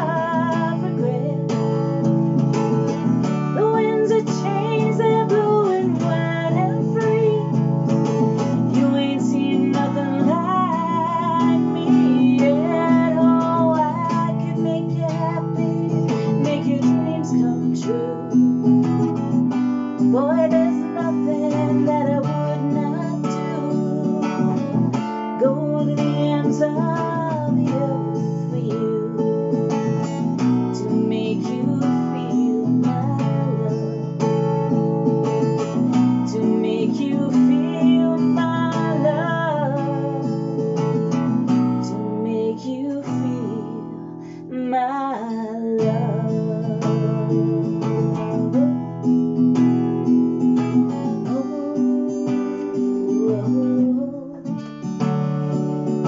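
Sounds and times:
acoustic guitar strumming: 0:00.0 - 0:56.0
woman singing: 0:00.0 - 0:56.0.

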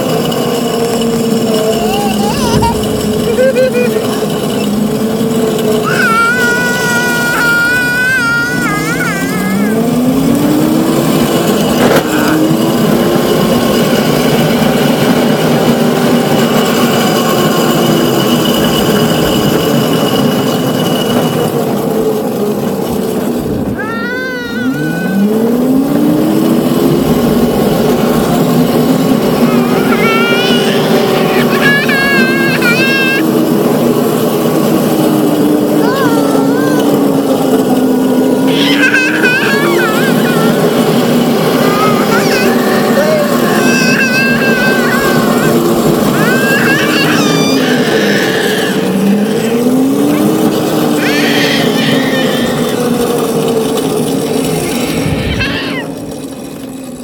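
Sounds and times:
electric motor whining: 0:00.0 - 0:57.0
child squealing with laughter: 0:01.5 - 0:04.9, 0:05.6 - 0:21.0, 0:23.6 - 0:26.9, 0:27.5 - 0:53.4, 0:54.3 - 0:56.1.

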